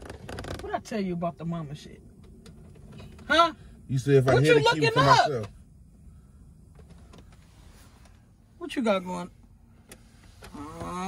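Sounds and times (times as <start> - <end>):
faint car cabin hum: 0.0 - 11.0.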